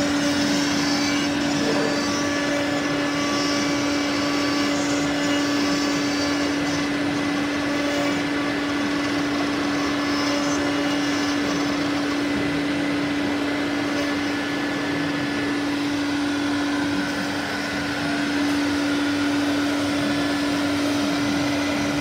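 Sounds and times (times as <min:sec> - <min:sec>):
router spindle hum: 0:00.0 - 0:22.0.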